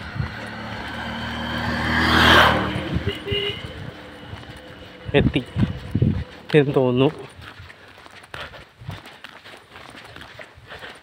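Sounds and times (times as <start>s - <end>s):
vehicle passing by: 0.0s - 7.4s.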